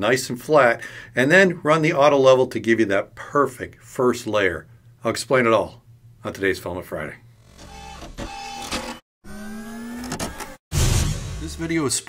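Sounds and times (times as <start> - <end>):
stepper motors whining: 7.4 - 10.6.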